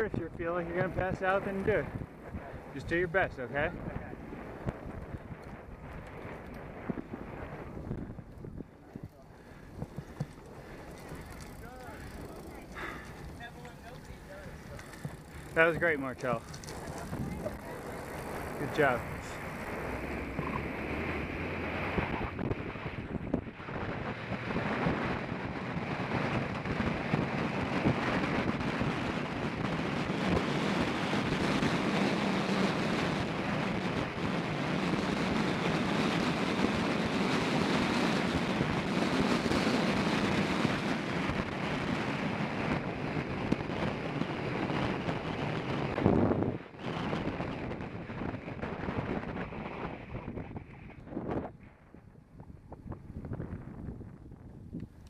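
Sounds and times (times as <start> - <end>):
wind rushing over microphone: 0.0 - 55.0.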